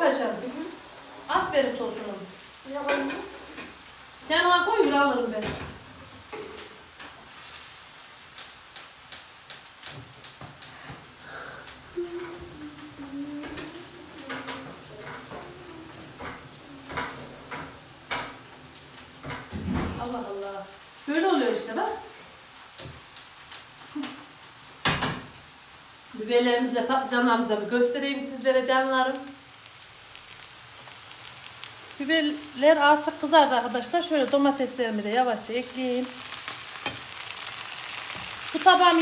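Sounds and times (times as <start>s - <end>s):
peppers sizzling in a pan: 0.0s - 39.0s.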